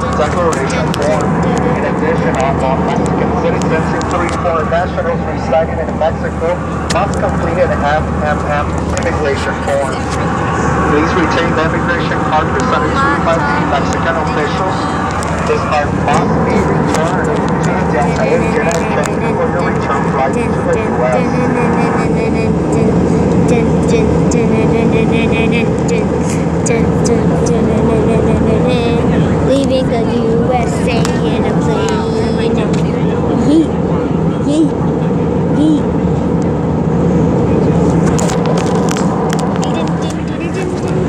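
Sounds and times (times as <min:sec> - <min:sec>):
jet cabin engine rush: 0:00.0 - 0:41.0
steady hum: 0:00.0 - 0:41.0.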